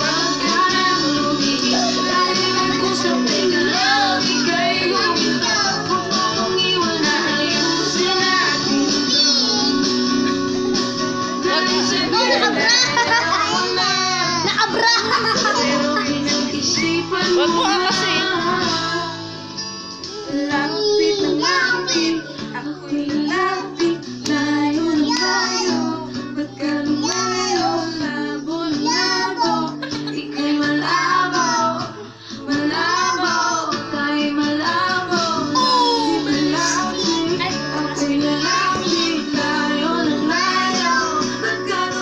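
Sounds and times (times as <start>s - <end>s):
child singing into a microphone: 0.0s - 10.4s, 20.1s - 42.0s
loud backing music: 0.0s - 42.0s.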